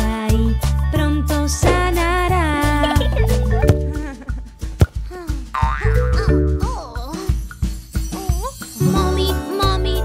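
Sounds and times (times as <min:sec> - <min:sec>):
light background music: 0:00.0 - 0:10.0
sharp knock: 0:01.6 - 0:02.1.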